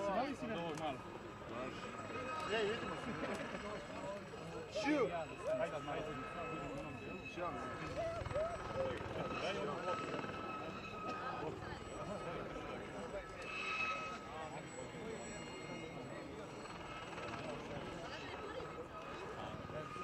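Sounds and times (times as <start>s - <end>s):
helicopter high-pitched whine: 0.0s - 20.0s
spectators talking: 0.0s - 20.0s.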